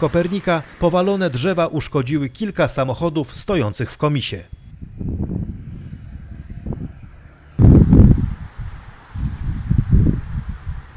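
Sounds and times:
wind buffeting microphone: 4.5s - 10.9s.

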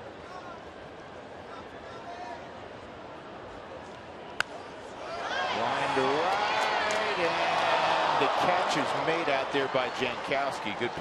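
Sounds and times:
stadium crowd shouting: 5.0s - 11.0s.

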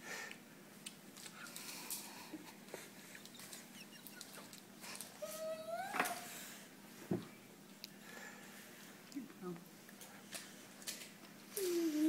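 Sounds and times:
child whining hum: 4.9s - 6.7s, 11.5s - 12.0s.

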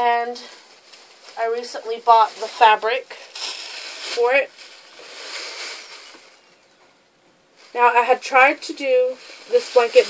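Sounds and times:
fabric and wrapping rustling: 0.0s - 6.6s, 7.5s - 10.0s.

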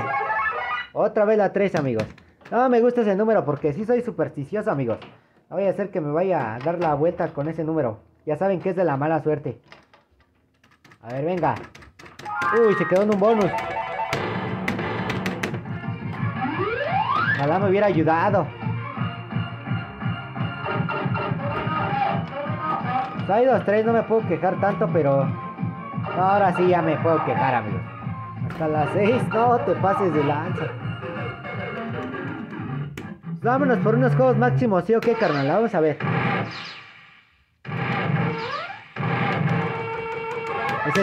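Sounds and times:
electronic game music: 0.0s - 1.0s, 12.2s - 41.0s.

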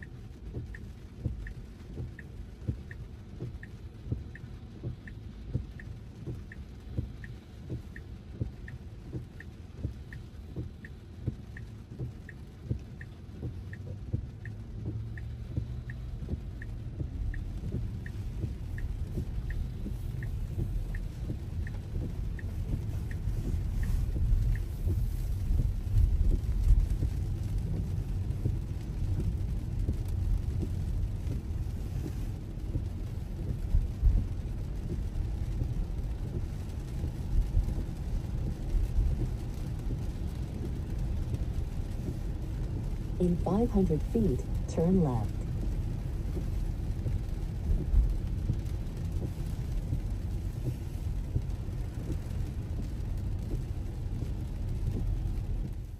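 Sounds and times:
rain on car: 0.0s - 55.9s
turn signal ticking: 0.0s - 55.9s
tyres on wet road: 0.0s - 55.9s.

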